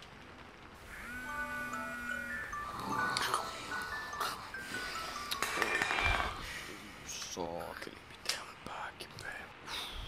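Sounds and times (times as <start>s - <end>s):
smartphone alarm melody: 0.9s - 5.8s.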